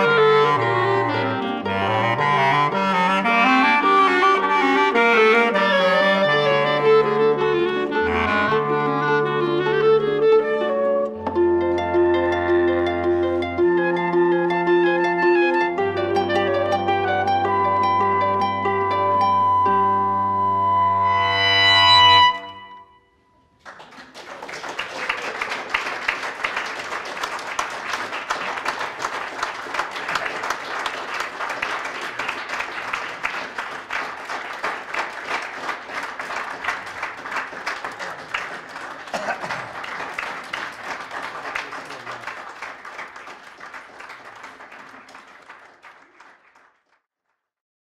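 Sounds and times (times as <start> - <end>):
clarinets and harp chord: 11.1 - 22.8
audience applauding: 23.6 - 47.0.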